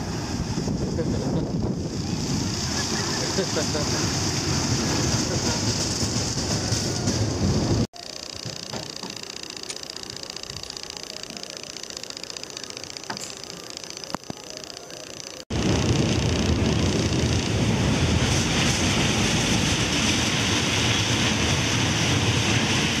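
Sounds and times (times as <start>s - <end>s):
wind on microphone: 0.0s - 7.9s, 15.5s - 23.0s
train ride rushing and rumbling: 0.0s - 8.0s, 15.5s - 23.0s.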